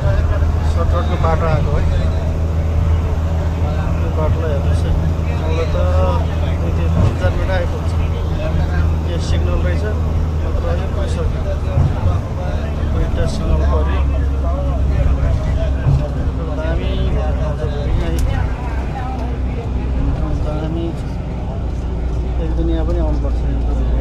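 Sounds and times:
bus engine droning: 0:00.0 - 0:24.0
people chattering: 0:00.0 - 0:24.0
road noise: 0:00.0 - 0:24.0.

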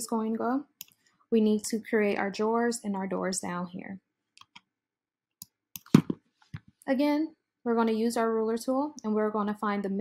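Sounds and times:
computer mouse clicks: 0:00.8 - 0:01.0, 0:04.4 - 0:04.7, 0:05.4 - 0:06.7.

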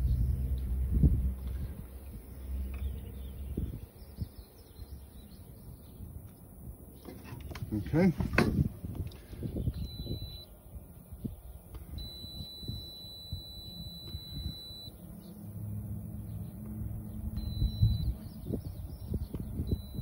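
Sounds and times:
high electronic beep: 0:09.8 - 0:10.5, 0:12.0 - 0:14.9, 0:17.4 - 0:18.2, 0:19.6 - 0:20.0.

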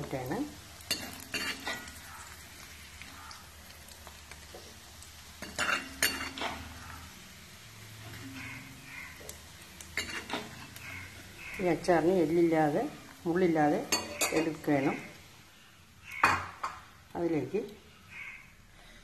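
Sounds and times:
oil sizzling: 0:00.0 - 0:19.0.

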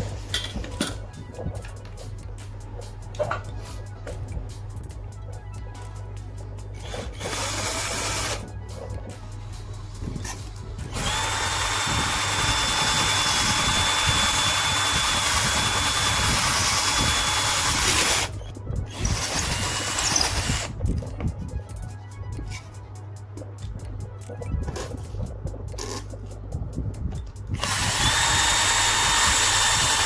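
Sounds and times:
power drill boring through plywood: 0:06.8 - 0:08.4, 0:10.9 - 0:18.3, 0:18.9 - 0:20.8, 0:27.6 - 0:30.0.

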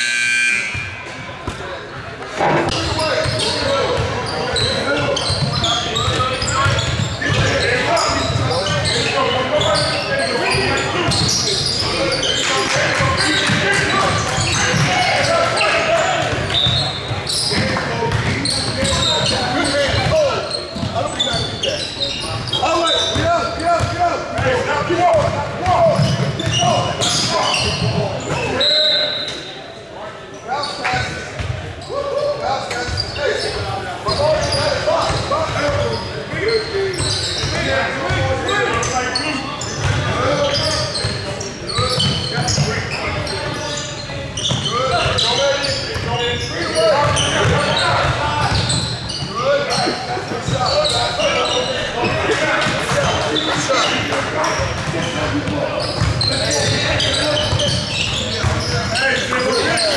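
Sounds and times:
shouts and chatter: 0:00.0 - 0:59.9.

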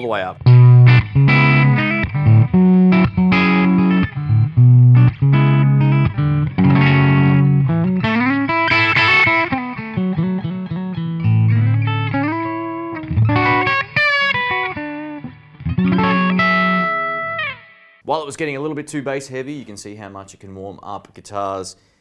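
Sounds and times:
electric guitar riff: 0:00.0 - 0:18.0.

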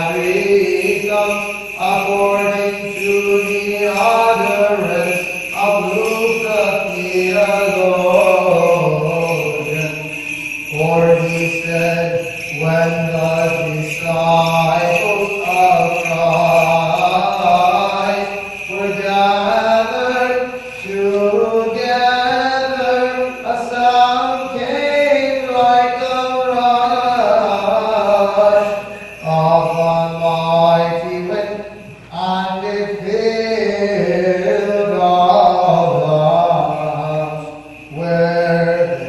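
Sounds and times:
person chanting a hymn: 0:00.0 - 0:39.0.

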